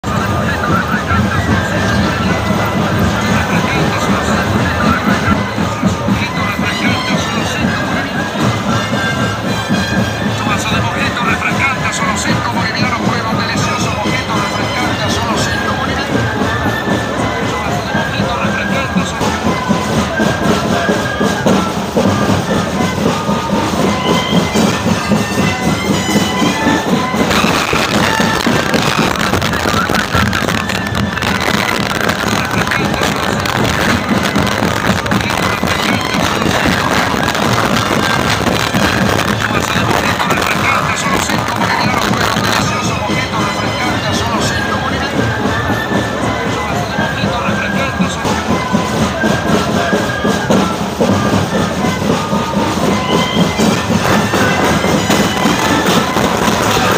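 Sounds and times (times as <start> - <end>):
flutes playing reedy melody: 0.0 - 56.9
steady drum beat: 0.0 - 56.9.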